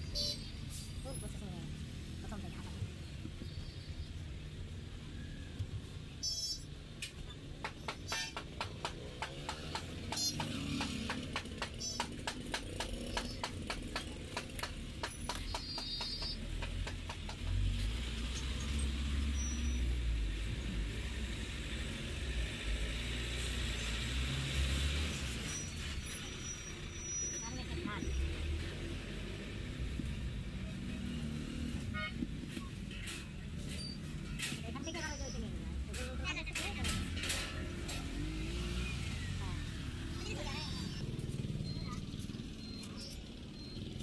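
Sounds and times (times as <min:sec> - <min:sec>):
low rumble of traffic: 0:00.0 - 0:44.0.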